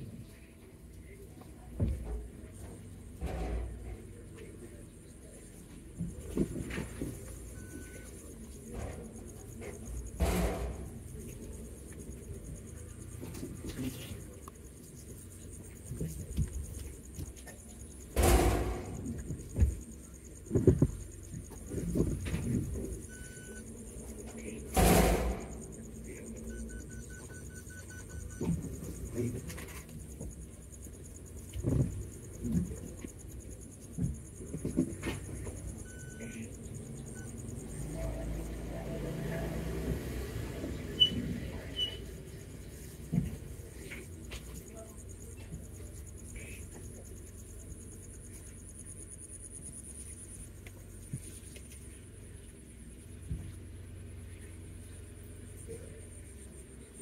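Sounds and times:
car engine and road rumble: 0:00.0 - 0:57.0
knocks and thumps from bumps: 0:01.7 - 0:04.5, 0:05.7 - 0:11.1, 0:15.7 - 0:37.9, 0:42.6 - 0:44.6.

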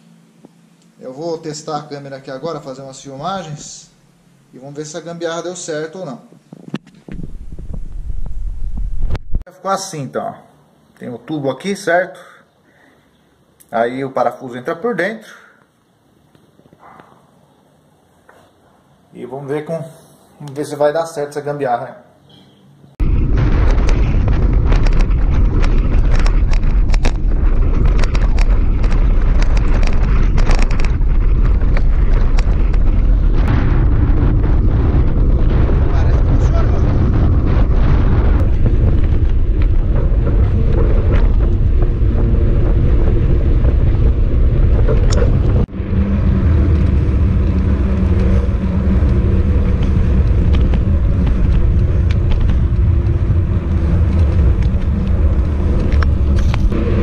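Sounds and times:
wind buffeting microphone: 0:06.7 - 0:09.5, 0:23.0 - 0:57.0
bike knocks and rattles: 0:23.6 - 0:33.4, 0:38.4 - 0:45.8.

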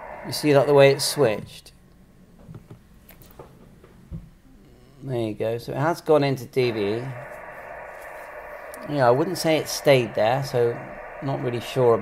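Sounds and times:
radio receiver hiss: 0:00.0 - 0:01.6, 0:06.6 - 0:12.0.

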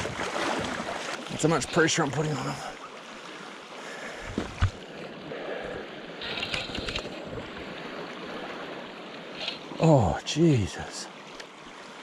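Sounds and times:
flowing river water: 0:00.0 - 0:12.0
clicks and scraping: 0:06.2 - 0:07.2.

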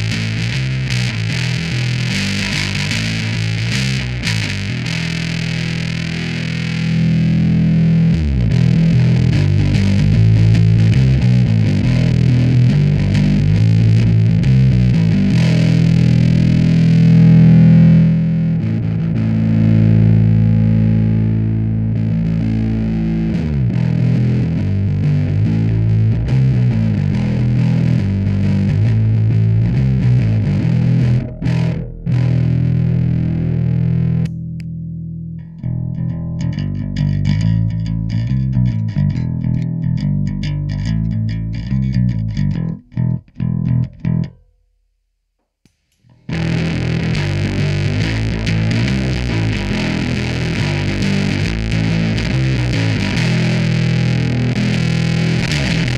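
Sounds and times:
distorted bass guitar notes: 0:00.0 - 0:44.6, 0:46.0 - 0:55.9.

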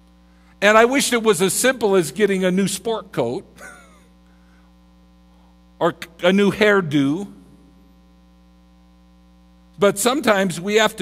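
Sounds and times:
electrical mains hum: 0:00.0 - 0:11.0
man's voice: 0:00.6 - 0:03.5, 0:05.8 - 0:07.4, 0:09.8 - 0:11.0.

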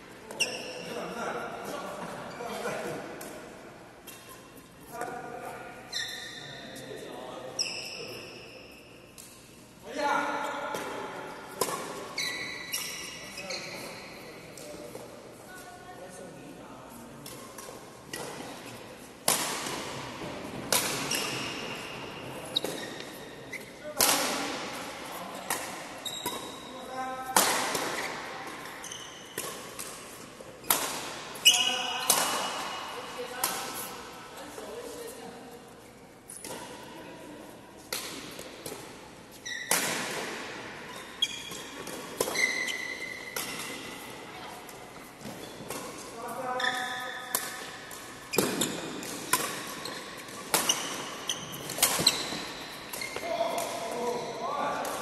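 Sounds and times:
rackets striking shuttlecock: 0:17.2 - 0:21.6, 0:41.3 - 0:46.1, 0:46.7 - 0:54.2.

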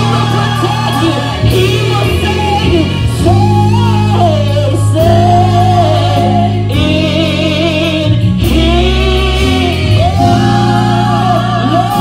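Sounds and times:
women singing gospel: 0:00.0 - 0:12.0.

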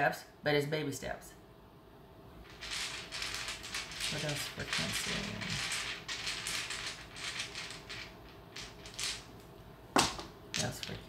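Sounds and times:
cards being shuffled: 0:02.5 - 0:11.0.

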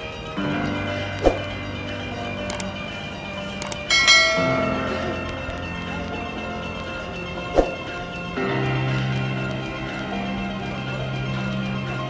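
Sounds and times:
quick clicks: 0:02.4 - 0:02.7, 0:03.6 - 0:03.9.

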